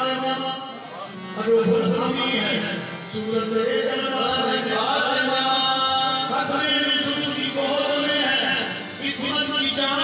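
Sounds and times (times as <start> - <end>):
harmoniums: 0.0 - 10.0.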